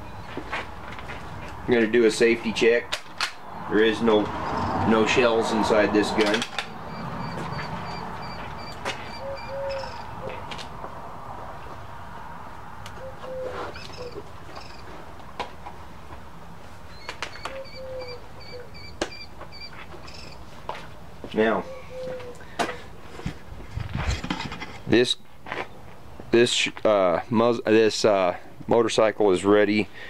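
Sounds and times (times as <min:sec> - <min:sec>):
rifle handling clicks and knocks: 0:02.9 - 0:03.4.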